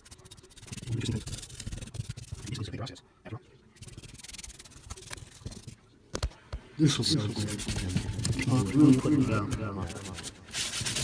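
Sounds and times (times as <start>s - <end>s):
paintbrush scrubbing rough surface: 0.0s - 2.8s, 3.8s - 5.8s, 7.1s - 11.0s.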